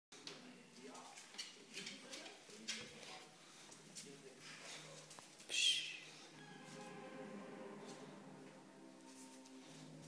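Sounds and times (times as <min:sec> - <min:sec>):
faint indistinct voices: 0:00.2 - 0:10.0.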